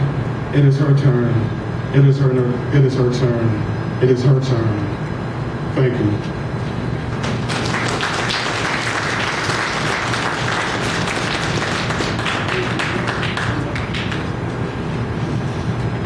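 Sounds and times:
steady low hum: 0:00.0 - 0:16.0
audience applauding: 0:07.2 - 0:14.6.

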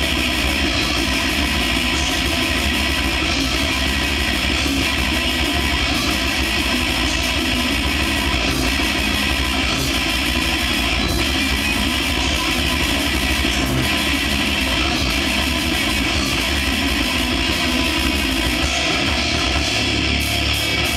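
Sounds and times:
distorted electric guitars: 0:00.0 - 0:20.9
drums: 0:00.0 - 0:20.9.

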